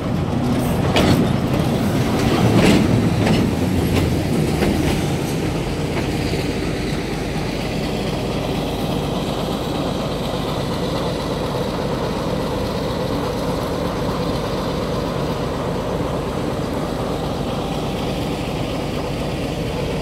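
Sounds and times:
locomotive engine rumble: 0.0 - 20.0
wheels clacking over rail joints: 0.0 - 20.0.

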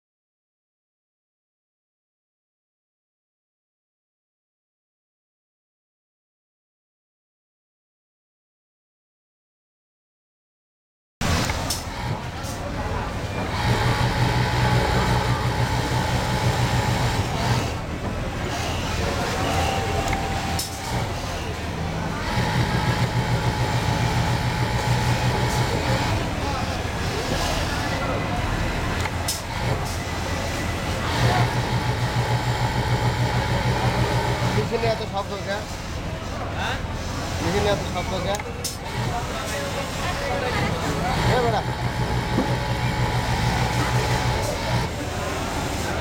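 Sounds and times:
busy factory floor noise: 11.2 - 46.0
industrial sewing machine running: 11.2 - 46.0.

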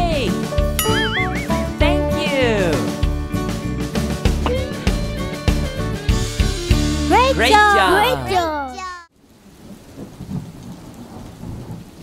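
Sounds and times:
rain: 8.8 - 12.0
low rumbling thunder: 9.6 - 12.0.

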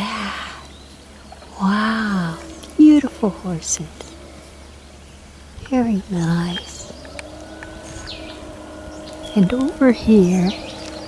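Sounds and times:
bird chirps: 0.0 - 11.0
distant motor drone: 0.0 - 11.0
high descending bird call: 0.0 - 11.0.

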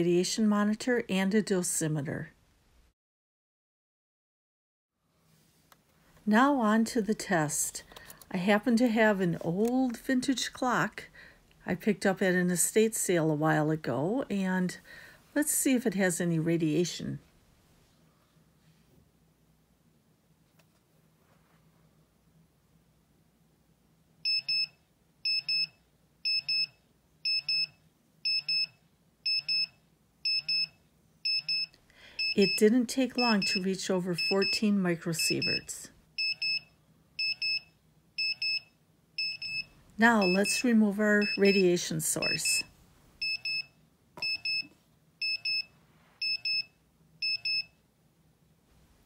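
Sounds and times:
geiger counter alarm double beeps: 24.2 - 42.6, 43.2 - 47.8.

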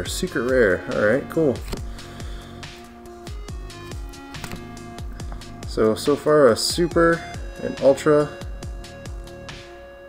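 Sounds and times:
electronic music with steady beat: 0.0 - 10.0.

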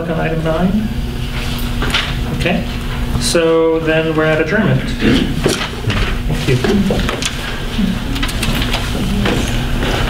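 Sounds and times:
low room hum: 0.0 - 10.0
paper rustling: 5.4 - 9.6.

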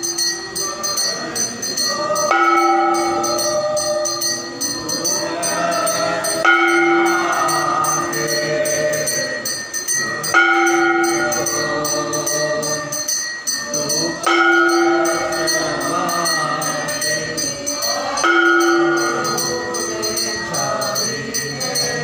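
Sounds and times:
bells and jingling percussion: 0.0 - 22.0
group singing a hymn: 0.0 - 22.0.

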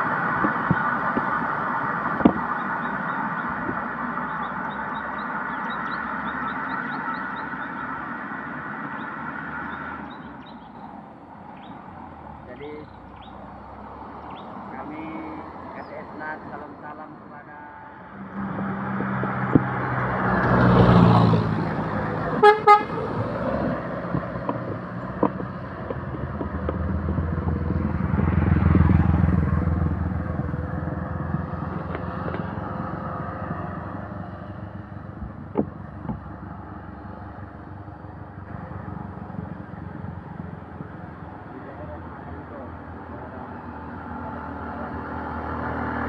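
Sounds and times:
road traffic passing: 0.0 - 46.0
truck engine: 0.0 - 46.0
vehicle horn toots: 22.4 - 23.2.

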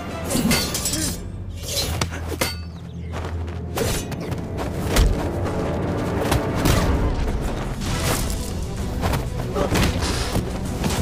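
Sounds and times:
steel blades clashing and swishing: 0.0 - 2.7.

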